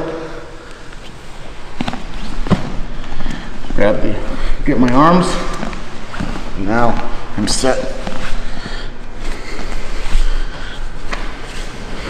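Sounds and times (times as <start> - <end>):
clothing rustling: 0.8 - 3.9, 5.5 - 7.3
bodies shifting on padded mat: 0.9 - 3.8.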